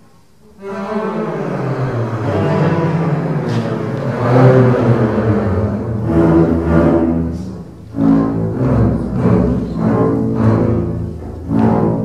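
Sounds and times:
double bass ensemble low notes: 0.0 - 12.0.

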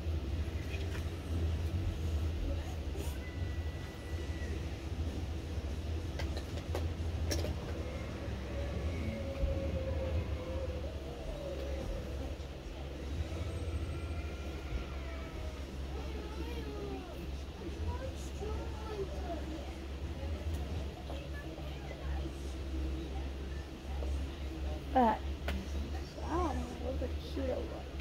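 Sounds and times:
low background rumble: 0.0 - 28.0.

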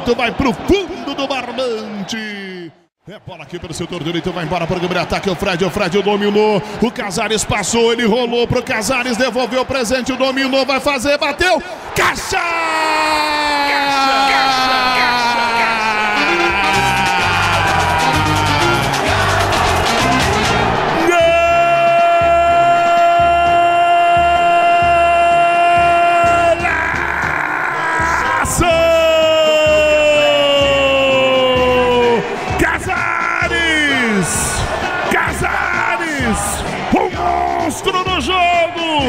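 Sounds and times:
commentator shouting: 0.0 - 39.0.

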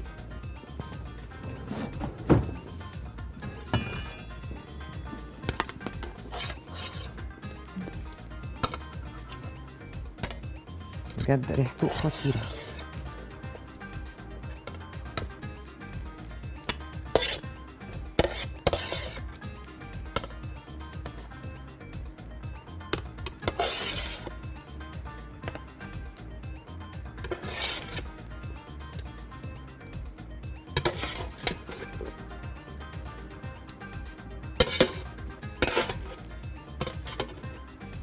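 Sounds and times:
background music: 0.0 - 38.0
utensil scraping ceramic plate: 5.4 - 7.3, 11.6 - 13.0, 16.7 - 17.5, 18.2 - 19.4, 23.2 - 24.4, 27.2 - 28.1, 30.8 - 32.1, 34.6 - 36.2, 36.8 - 37.5.

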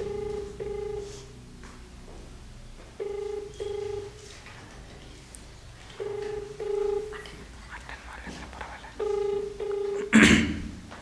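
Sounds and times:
phone ringback tone: 0.0 - 1.4, 3.0 - 4.6, 5.9 - 7.5, 9.0 - 10.1.

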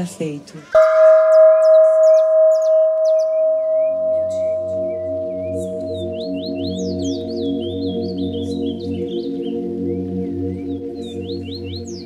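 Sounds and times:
low ambient music drone: 0.0 - 12.0
high chirps: 0.6 - 12.0
singing bowl ringing: 0.7 - 9.6.

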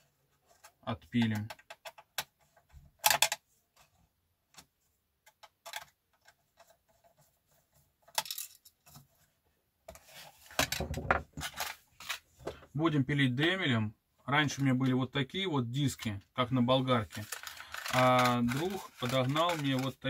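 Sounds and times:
plastic parts tapping and rattling: 0.5 - 3.9, 4.5 - 9.2, 9.9 - 12.7, 17.1 - 20.0
rustling handling noise: 6.2 - 12.7, 16.8 - 20.0.

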